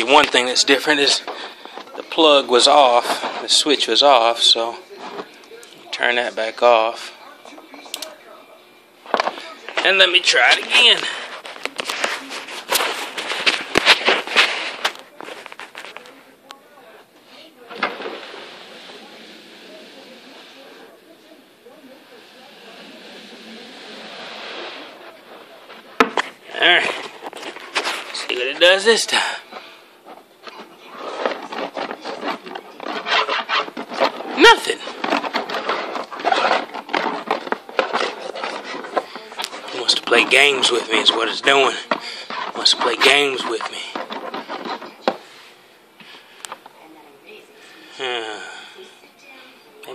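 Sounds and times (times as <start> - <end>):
scraping plastic bin: 0.0 - 5.4, 22.5 - 46.6
rustling and clattering handling: 0.0 - 5.9, 9.0 - 16.2, 24.9 - 46.8
slippered feet shuffling on carpet: 10.5 - 16.2, 22.2 - 46.7.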